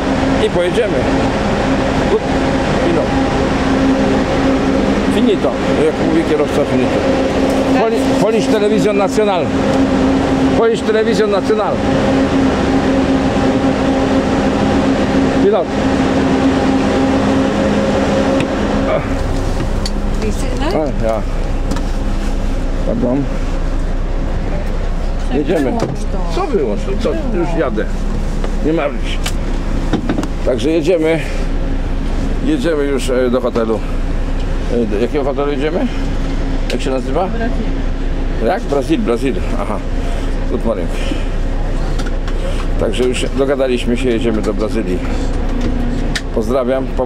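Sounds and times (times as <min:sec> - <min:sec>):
coach engine idling: 0:00.0 - 0:47.0.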